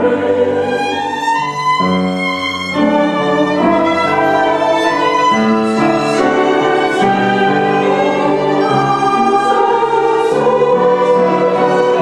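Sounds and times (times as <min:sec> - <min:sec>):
piano: 0:00.0 - 0:12.0
violins: 0:00.0 - 0:12.0
women's choir singing: 0:00.0 - 0:12.0.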